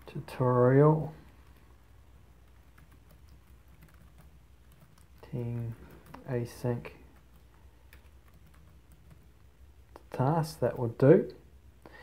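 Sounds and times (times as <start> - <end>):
typing on computer keyboard: 2.4 - 6.3, 6.9 - 9.3.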